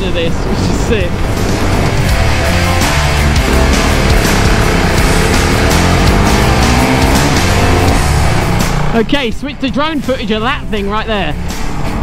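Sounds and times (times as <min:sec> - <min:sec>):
motorcycle engine revving: 0:00.0 - 0:12.0
rock music with driving beat: 0:00.0 - 0:12.0.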